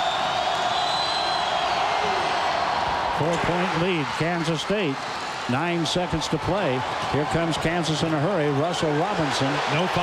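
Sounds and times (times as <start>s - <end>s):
arena crowd yelling: 0.0s - 10.0s.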